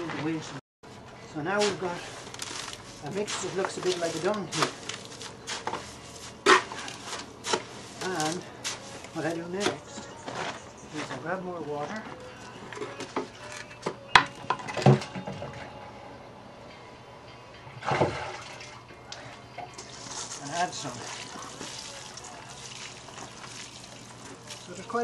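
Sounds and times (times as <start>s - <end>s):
water splashing onto mud: 19.8s - 25.0s.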